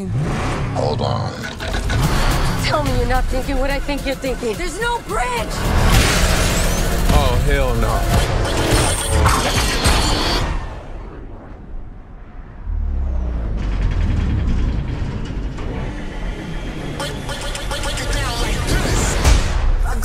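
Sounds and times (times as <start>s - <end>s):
car noise: 0.0s - 19.5s
dramatic music with rising tones: 1.4s - 20.0s
loud crash and debris: 5.6s - 10.4s.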